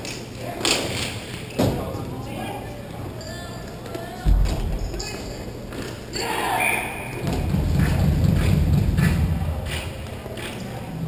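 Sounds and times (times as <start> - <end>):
hockey thuds echoing in hall: 0.6 - 2.3, 4.2 - 5.1, 6.7 - 10.6.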